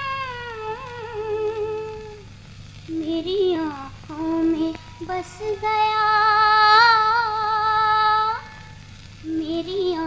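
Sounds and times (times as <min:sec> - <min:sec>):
woman singing: 0:00.0 - 0:02.3, 0:02.9 - 0:08.5, 0:09.2 - 0:10.0.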